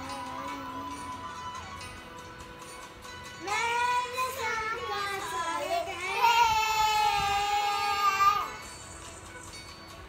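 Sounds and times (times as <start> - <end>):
child singing: 0.0 - 1.4, 3.4 - 8.6.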